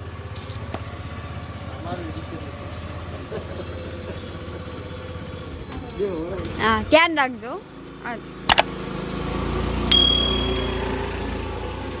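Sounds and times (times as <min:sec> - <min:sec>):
motor scooter engine running: 0:00.0 - 0:12.0
bright bell ding: 0:09.9 - 0:11.3.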